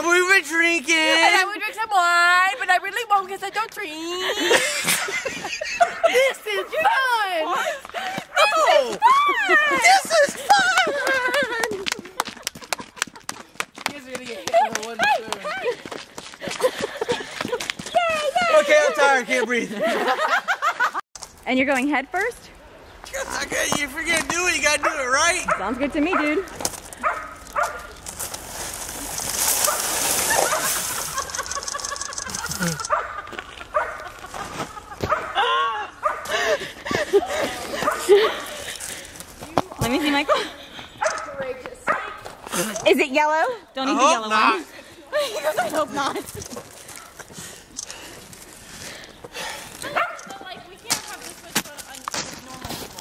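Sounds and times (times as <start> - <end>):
people laughing and shrieking: 4.1 - 13.2, 30.0 - 38.8
hands clapping: 10.5 - 15.5
rushing hiss of sliding on snow: 28.2 - 31.4.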